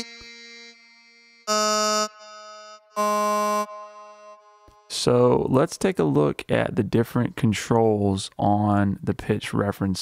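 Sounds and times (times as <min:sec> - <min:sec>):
buzzy synthesized tone: 0:00.0 - 0:05.4.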